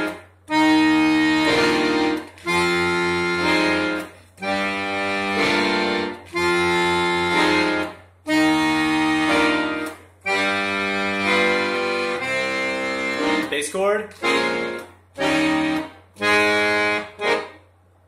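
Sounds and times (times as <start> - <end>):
piano accordion chords: 0.0 - 18.0.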